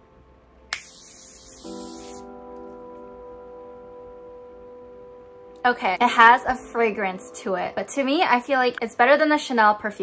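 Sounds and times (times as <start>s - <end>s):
soft background music: 0.0s - 10.0s
spray bottle hiss: 0.7s - 2.3s.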